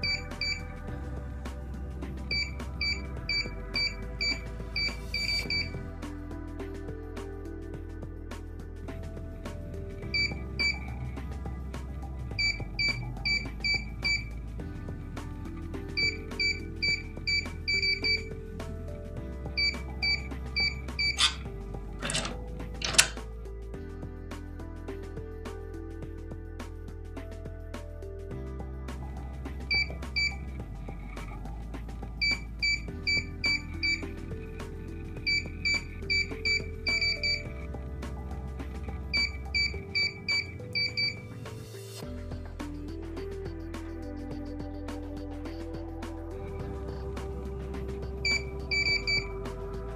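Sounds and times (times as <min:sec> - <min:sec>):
background music: 0:00.0 - 0:49.9
keypad beeping: 0:02.3 - 0:05.7, 0:12.4 - 0:14.3, 0:16.0 - 0:18.3, 0:19.6 - 0:21.4, 0:22.0 - 0:23.1, 0:32.2 - 0:34.0, 0:35.3 - 0:37.5, 0:39.1 - 0:41.2, 0:48.2 - 0:49.3
keypad lock short high beeps: 0:20.1 - 0:21.4.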